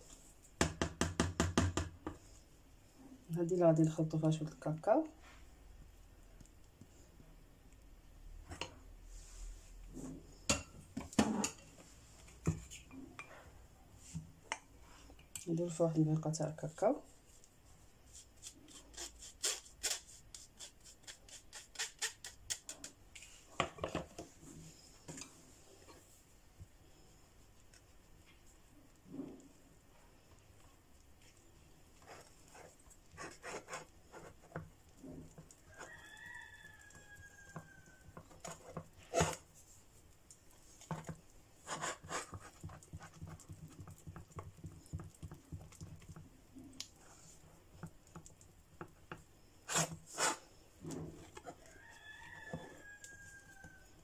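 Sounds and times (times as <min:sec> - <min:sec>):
spatula stirring batter in a bowl: 0:00.0 - 0:54.0.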